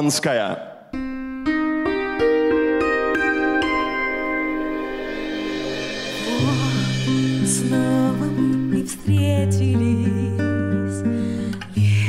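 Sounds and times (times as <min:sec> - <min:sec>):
keyboard chord and notes: 0:01.0 - 0:09.1
soft airy synth wash: 0:02.7 - 0:08.8.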